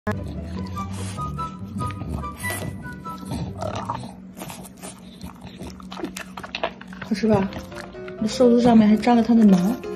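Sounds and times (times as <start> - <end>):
background music: 0.1 - 4.3, 6.4 - 9.9
dog chewing and lip smacking: 0.1 - 8.3.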